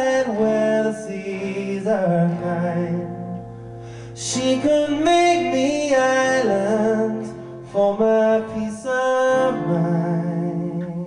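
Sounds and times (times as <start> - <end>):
man singing long notes: 0.0 - 3.4, 4.2 - 11.0
acoustic guitar: 0.0 - 11.0.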